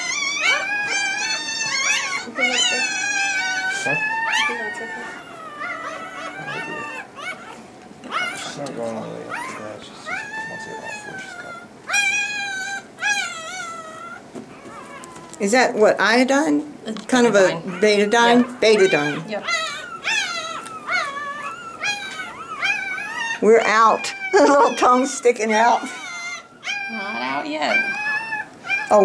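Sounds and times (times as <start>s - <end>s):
puppy crying in high squeals: 0.0s - 15.5s, 17.3s - 29.0s.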